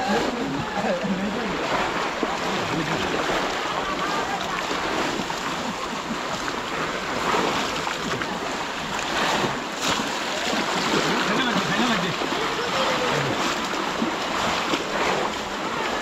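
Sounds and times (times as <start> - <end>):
voices calling: 0.0 - 14.2
muddy water sloshing and splashing: 0.0 - 16.0.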